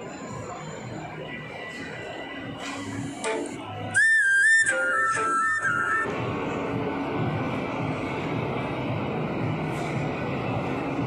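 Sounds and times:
echoing mall crowd ambience: 0:00.0 - 0:11.0
high whistle-like tune: 0:02.6 - 0:06.2.

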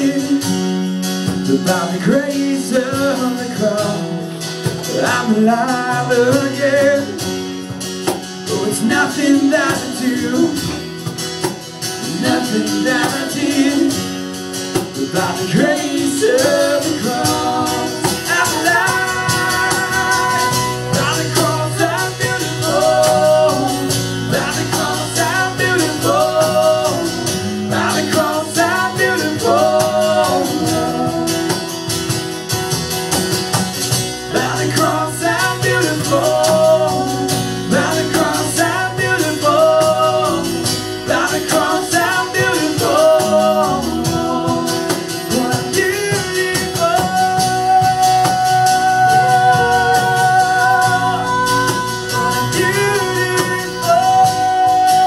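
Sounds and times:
acoustic guitar worship song: 0:00.0 - 0:55.0
steady bass notes: 0:00.0 - 0:55.0.

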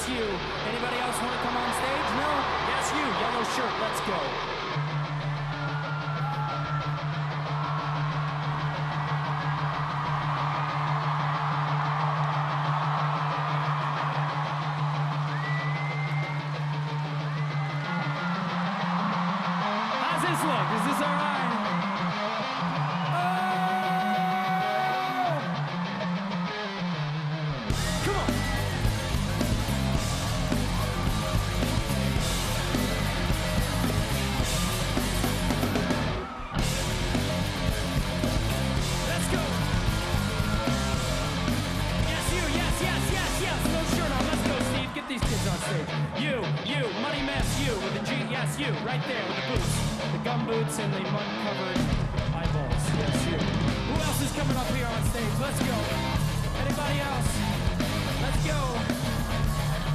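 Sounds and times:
crowd noise: 0:00.0 - 0:59.9
rock band with drums and guitar: 0:00.0 - 0:59.9
whistles: 0:15.2 - 0:16.6.

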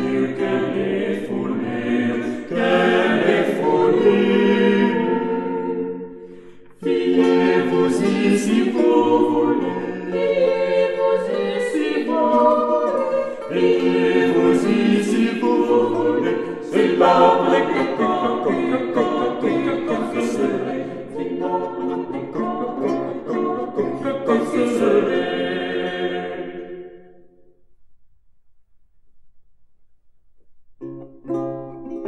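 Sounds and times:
vocal ensemble singing polyphony: 0:00.0 - 0:27.4.

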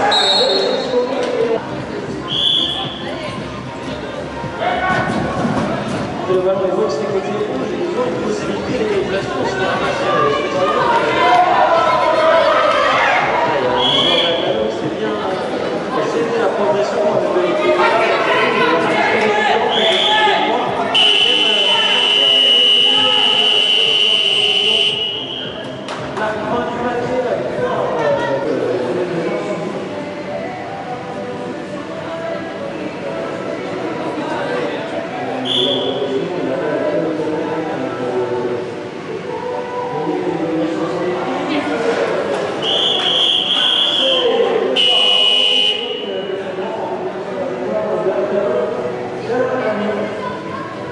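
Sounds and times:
whistle blasts: 0:00.0 - 0:01.0, 0:02.3 - 0:03.0, 0:13.8 - 0:14.4, 0:19.7 - 0:20.3, 0:20.9 - 0:25.6, 0:35.4 - 0:36.0, 0:42.6 - 0:46.3
crowd chatter in large hall: 0:00.0 - 0:50.9.

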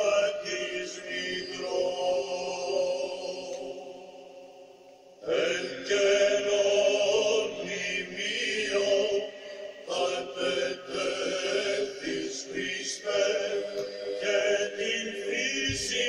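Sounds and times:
slow chant in several voices: 0:00.0 - 0:16.0.

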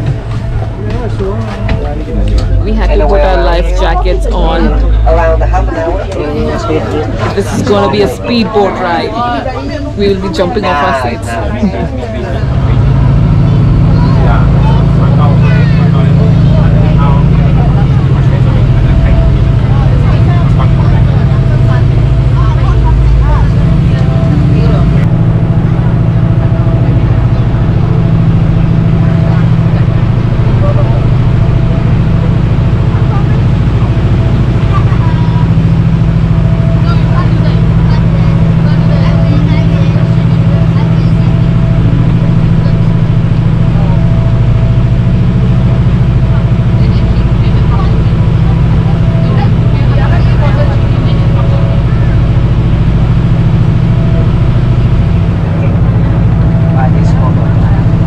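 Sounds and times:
speedboat engine droning: 0:00.0 - 0:58.0
water rushing along hull: 0:00.0 - 0:58.0.

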